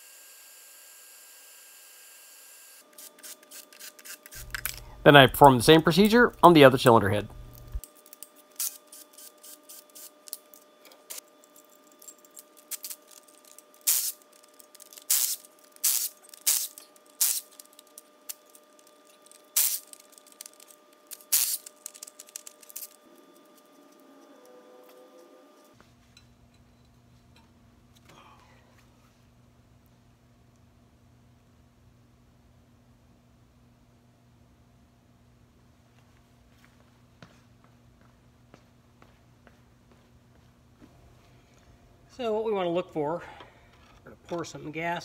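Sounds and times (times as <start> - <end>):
faint steady hum: 3.7 - 45.0
ratchet wrench clicking: 13.8 - 17.7, 19.6 - 22.9.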